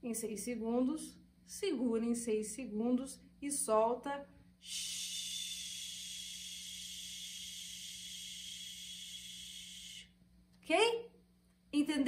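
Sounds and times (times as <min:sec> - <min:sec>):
woman exhaling in a hiss: 0:04.6 - 0:10.2.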